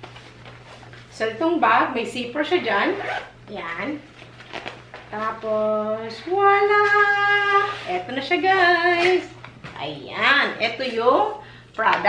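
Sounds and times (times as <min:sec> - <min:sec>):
fabric bag zipper opening: 0:02.7 - 0:03.4, 0:07.5 - 0:08.0.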